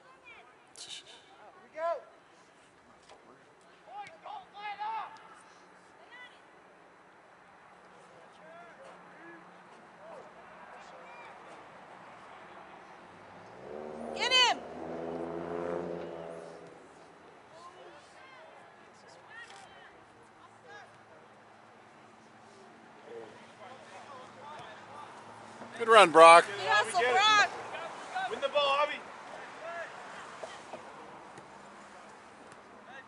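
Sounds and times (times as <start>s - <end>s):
vehicle engine hum: 12.2s - 17.2s
distant shouts from players: 13.9s - 14.8s.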